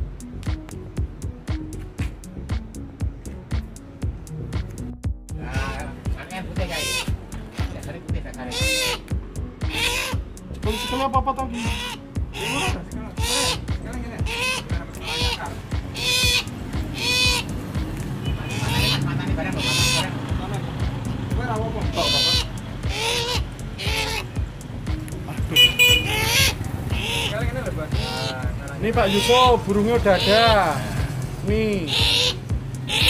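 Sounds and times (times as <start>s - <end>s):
crow harsh call: 6.6s - 7.7s, 8.4s - 9.1s, 9.7s - 17.6s, 18.2s - 20.2s, 21.9s - 24.4s, 25.6s - 31.1s, 31.8s - 33.0s.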